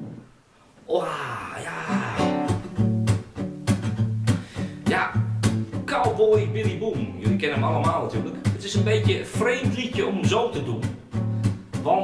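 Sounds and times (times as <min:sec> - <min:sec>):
acoustic guitar strumming: 0:01.8 - 0:12.0.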